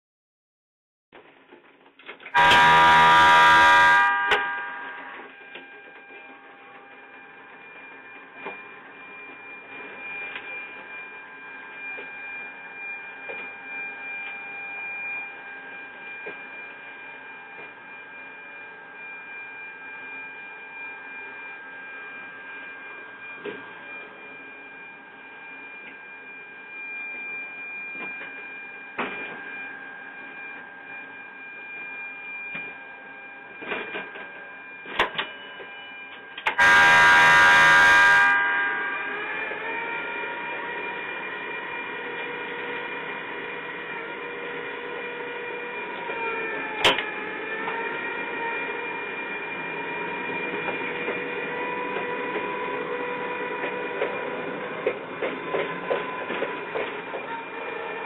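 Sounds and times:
electric train motor whine: 2.3s - 58.0s
loud harmonic tone: 2.4s - 6.8s, 36.5s - 41.8s.

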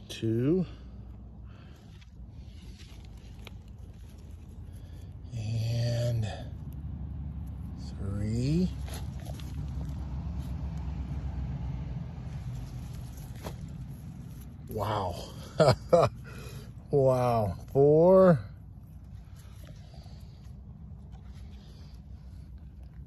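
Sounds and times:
steady low hum: 0.0s - 23.0s
fingers scraping through soil: 1.6s - 6.8s, 7.4s - 15.6s, 16.3s - 23.0s
man's drawn-out voice: 14.7s - 15.4s, 16.9s - 18.5s.

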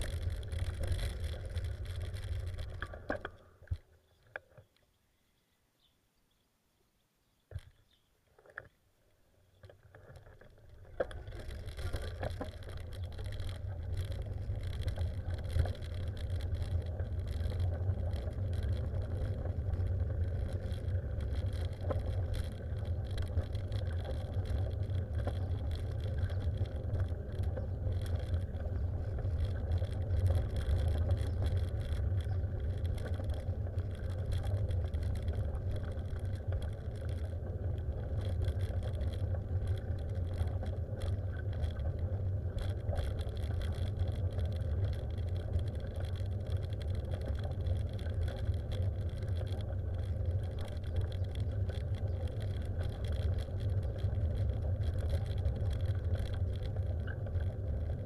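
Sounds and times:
vehicle rumbling on paved road: 0.0s - 5.0s, 7.4s - 58.0s.

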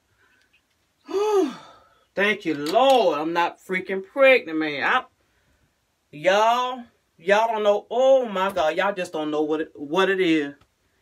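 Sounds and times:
woman sighing: 1.0s - 2.0s.

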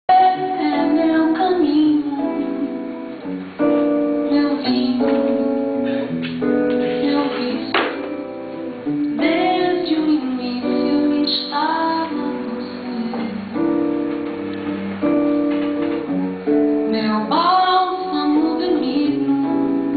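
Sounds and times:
woman singing: 0.1s - 5.9s, 6.7s - 14.2s, 16.8s - 19.9s
acoustic guitar: 0.1s - 19.9s.

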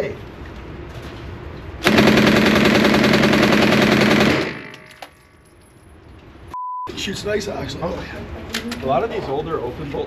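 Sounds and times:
submachine gun firing full auto: 1.8s - 5.0s.

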